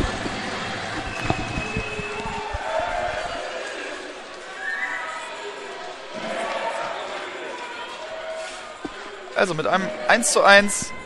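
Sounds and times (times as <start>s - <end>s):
indistinct voices in a hall: 0.0s - 11.0s.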